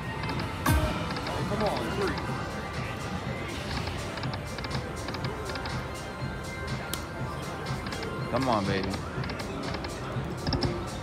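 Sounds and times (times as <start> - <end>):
electronic game music: 0.0 - 11.0.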